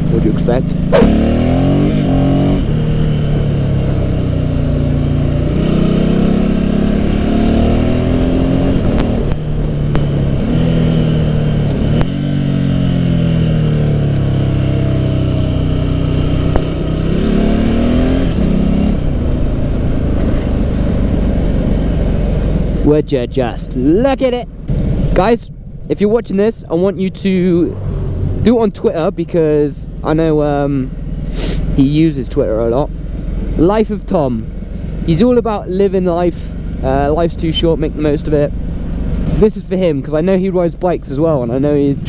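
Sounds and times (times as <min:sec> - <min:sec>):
motorcycle engine revving: 0:00.0 - 0:42.0.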